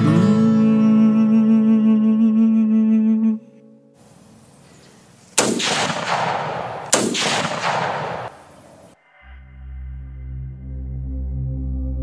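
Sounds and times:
faint hiss: 3.9s - 5.6s, 8.0s - 9.0s
echoing gunshot sound effects: 5.4s - 9.0s.

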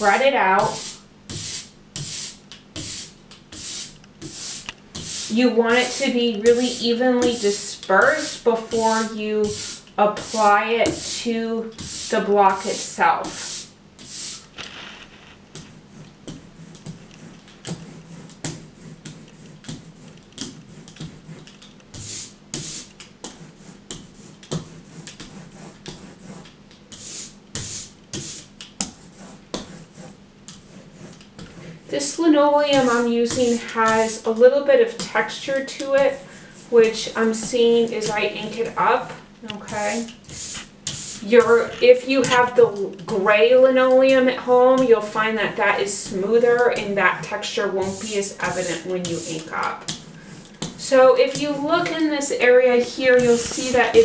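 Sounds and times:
ink roller hissing on glass: 0.0s - 14.5s
ink roller rolling with ticks: 0.0s - 54.0s.

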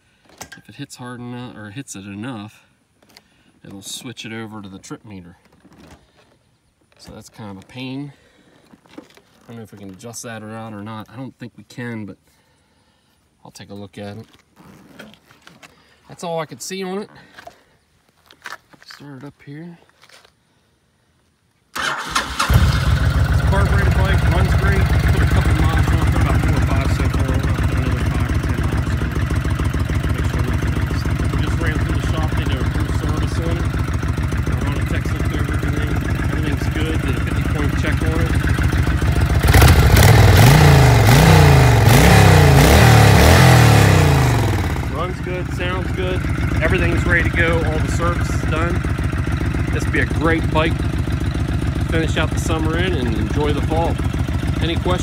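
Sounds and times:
motorcycle engine idling: 21.8s - 55.0s
motorcycle engine revving: 21.8s - 55.0s
motorcycle engine starting: 21.8s - 55.0s.

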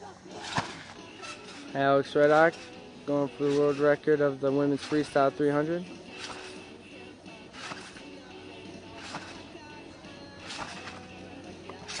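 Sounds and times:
faint background music: 0.0s - 12.0s
trampoline landing impacts: 0.3s - 2.7s, 7.5s - 8.1s, 9.0s - 9.5s, 10.4s - 11.2s.

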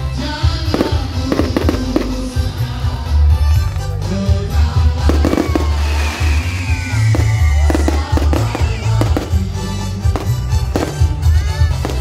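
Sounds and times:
loud music with heavy bass: 0.0s - 12.0s
fireworks bursting and crackling: 0.5s - 2.8s, 4.8s - 12.0s
long falling whistle: 5.5s - 8.0s.

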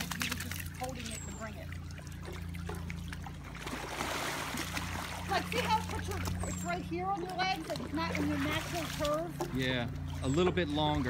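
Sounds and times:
legs kicking water splash: 0.0s - 11.0s
pool water trickling and sloshing: 0.0s - 11.0s
steady low hum: 0.0s - 11.0s.

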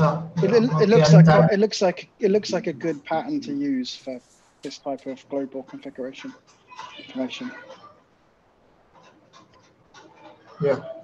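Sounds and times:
faint call audio hiss: 0.0s - 11.0s.

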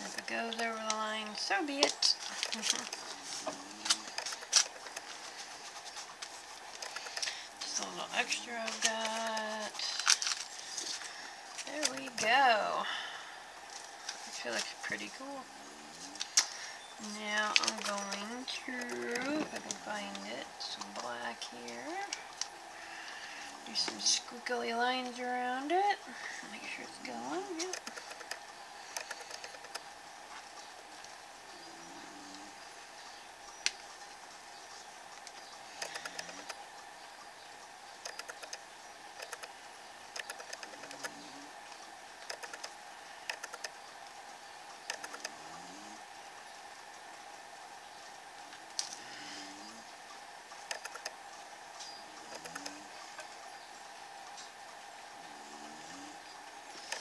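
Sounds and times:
faint steady hum: 0.0s - 57.0s.

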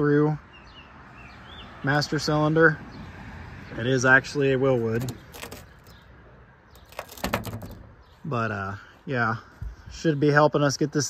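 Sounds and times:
light clicks and knocks: 4.9s - 6.0s, 6.8s - 7.9s.

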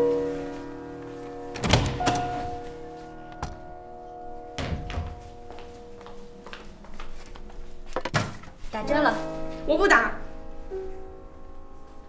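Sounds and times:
soft background music: 0.0s - 12.0s
door click: 1.6s - 2.6s
door thump: 4.6s - 5.2s.

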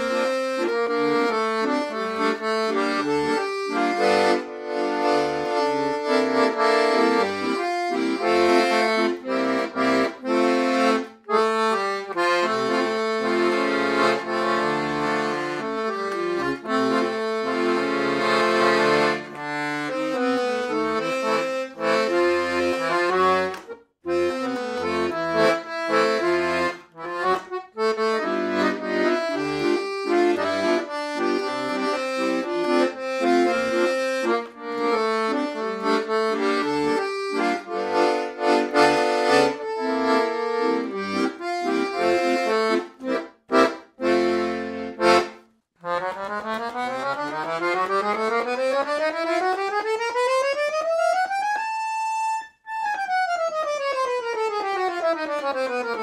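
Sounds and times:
accordion playing a tune: 0.0s - 56.0s.

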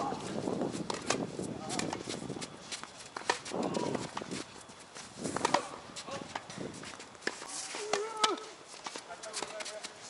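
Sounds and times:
knocks and taps on tennis court: 5.4s - 10.0s.

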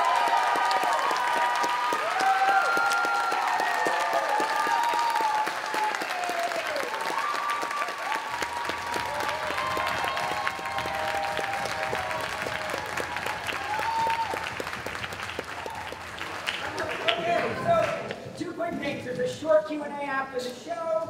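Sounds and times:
audience applauding: 0.0s - 18.3s.

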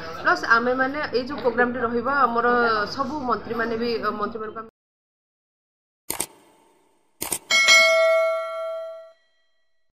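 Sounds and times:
notification bell ding: 7.5s - 9.4s.

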